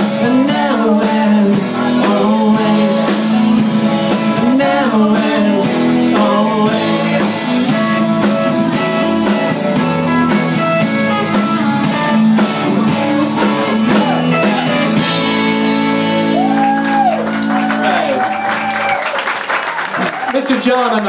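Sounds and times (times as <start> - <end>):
bass guitar: 0.0 - 19.2
drum kit: 0.0 - 19.2
electric guitars: 0.0 - 20.3.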